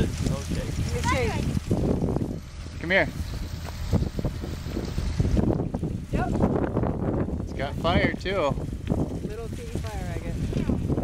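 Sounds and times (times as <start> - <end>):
machine engine rumbling: 0.0 - 11.0
wind buffeting microphone: 0.0 - 11.0.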